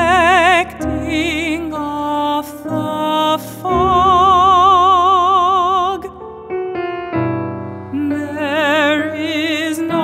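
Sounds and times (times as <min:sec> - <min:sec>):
woman singing with vibrato: 0:00.0 - 0:06.2, 0:07.9 - 0:10.0
piano: 0:00.0 - 0:10.0.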